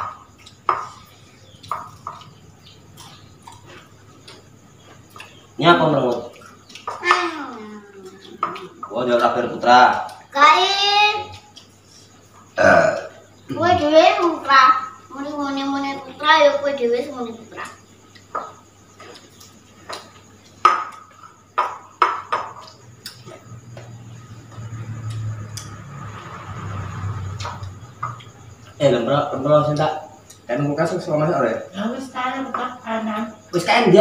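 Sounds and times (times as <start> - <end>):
person burping: 12.6 - 13.2.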